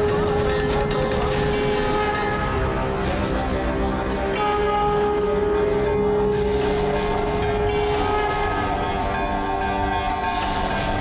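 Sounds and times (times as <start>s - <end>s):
dramatic droning music: 0.0s - 11.0s.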